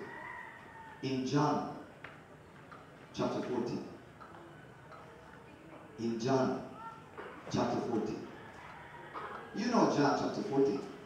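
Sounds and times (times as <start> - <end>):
faint background noises: 0.0 - 11.0.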